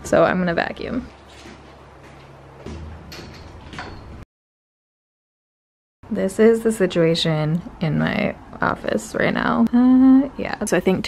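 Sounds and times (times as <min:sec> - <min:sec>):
knocks on wood floor: 0:02.6 - 0:02.9.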